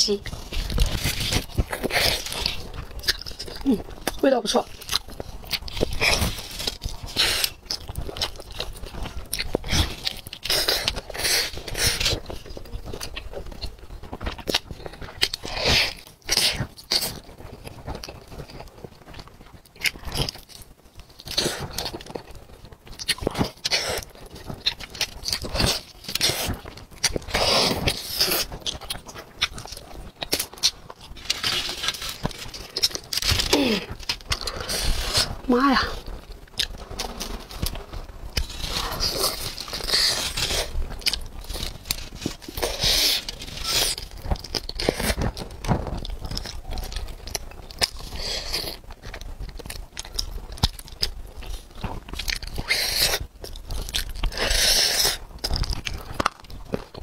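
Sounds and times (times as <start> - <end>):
chewing meat: 0.0 - 57.0.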